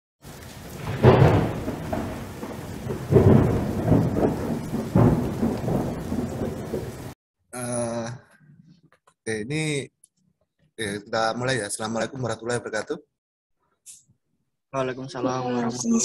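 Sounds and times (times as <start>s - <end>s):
steady rain: 0.2s - 7.2s
thunder rolling: 0.2s - 7.2s.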